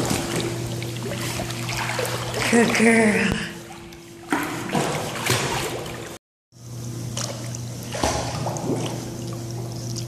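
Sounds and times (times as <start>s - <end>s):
pool water splashing and lapping: 0.0s - 6.2s, 6.8s - 10.0s.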